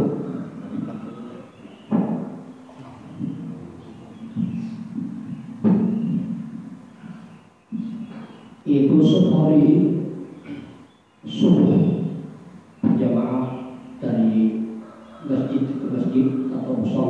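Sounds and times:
microphone handling thumps: 1.9s - 6.7s, 7.7s - 9.2s, 12.8s - 13.4s.

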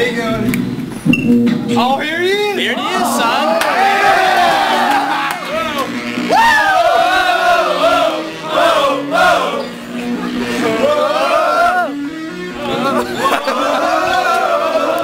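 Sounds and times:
boys shouting and whooping: 2.8s - 7.9s, 10.8s - 12.0s, 12.7s - 15.0s.

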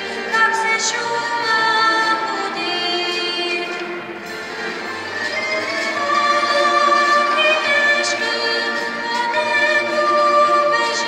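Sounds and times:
girl singing into microphone: 0.3s - 3.9s, 6.0s - 11.0s.

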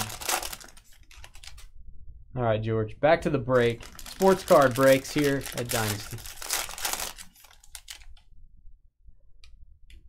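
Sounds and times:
card pack clicks and rustles: 0.0s - 1.7s, 3.6s - 8.2s.

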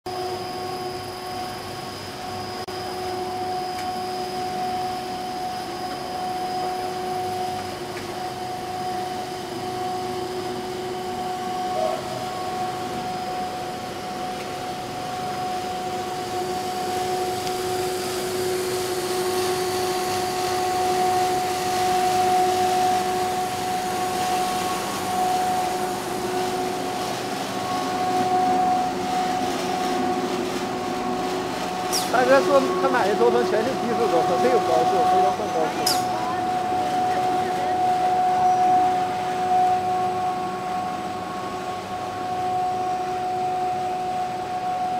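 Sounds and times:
machine whine: 0.1s - 44.9s
machinery drone of motors and fans: 0.1s - 44.9s.

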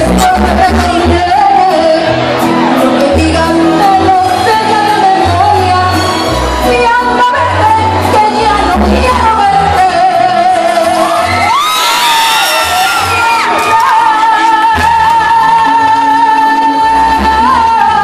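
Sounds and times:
band with pulsing bass: 0.0s - 11.6s.

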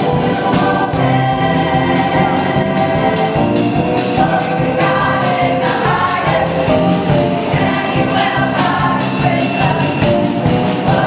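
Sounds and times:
drum kit beat: 0.0s - 11.0s
gospel choir singing: 0.0s - 11.0s
keyboard: 0.0s - 11.0s.

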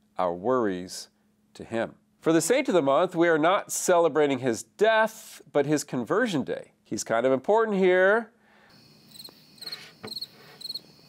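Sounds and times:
cricket chirping: 8.7s - 11.0s.

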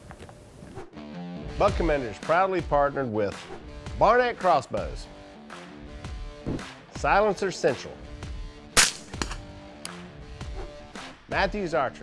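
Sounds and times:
background music: 0.8s - 12.0s.

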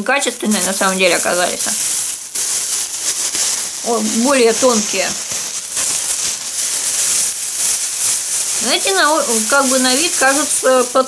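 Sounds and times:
plastic garbage bag rustling: 0.0s - 11.0s.

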